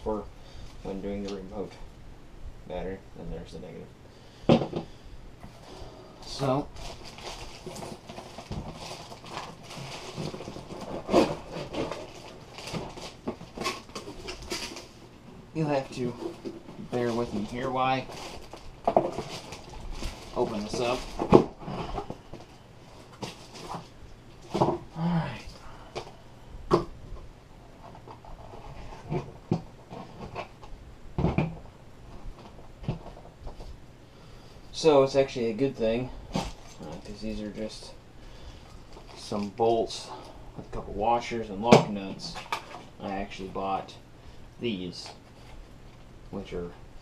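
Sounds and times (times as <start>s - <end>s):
plastic bag crinkling: 6.2s - 24.6s, 36.2s - 37.9s
cardboard box rustling and scraping: 6.7s - 15.0s.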